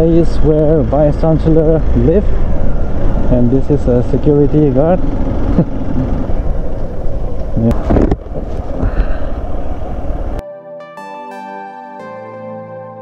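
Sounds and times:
motorcycle engine: 0.0s - 10.4s
wind rumbling on microphone: 5.1s - 10.4s
person laughing: 5.5s - 6.2s
soft keyboard music: 10.4s - 13.0s.

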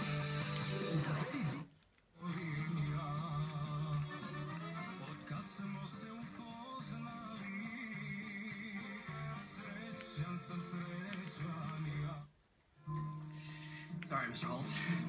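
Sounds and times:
music through tv speaker: 0.0s - 15.0s
accordion-like melody: 4.0s - 5.2s.

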